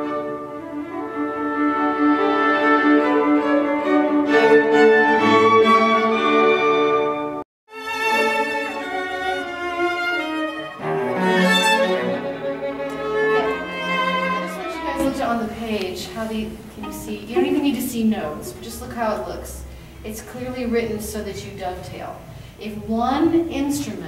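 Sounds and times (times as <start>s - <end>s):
woodwind line: 0.0s - 7.4s, 8.1s - 15.5s
classical chamber music on strings: 0.0s - 20.0s
string quartet bowed notes: 0.0s - 20.9s.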